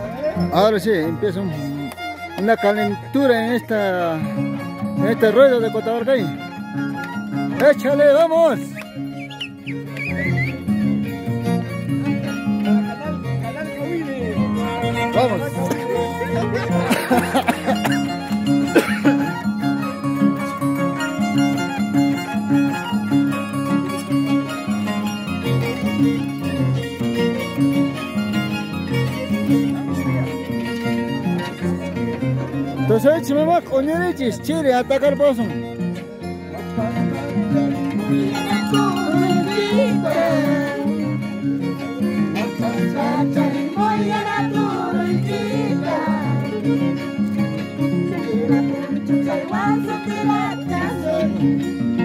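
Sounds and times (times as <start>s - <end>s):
harp plucked bass notes: 0.0s - 52.0s
violin melody: 0.0s - 52.0s.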